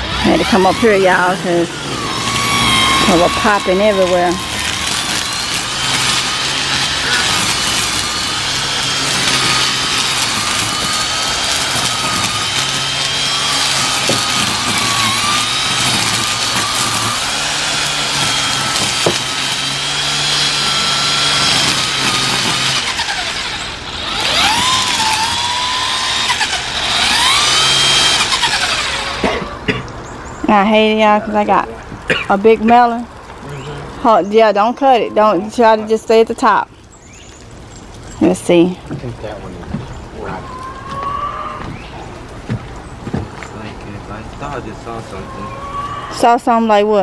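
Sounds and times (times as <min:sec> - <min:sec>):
string trimmer motor whining: 0:00.0 - 0:29.7, 0:32.3 - 0:37.3.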